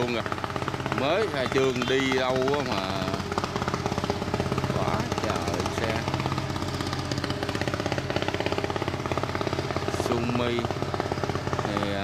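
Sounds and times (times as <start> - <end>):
excavator diesel engine clattering: 0.0 - 12.0.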